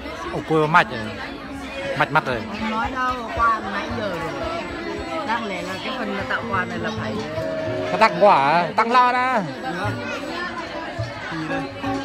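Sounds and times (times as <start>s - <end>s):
background music: 0.0s - 12.0s
people chattering: 0.0s - 12.0s.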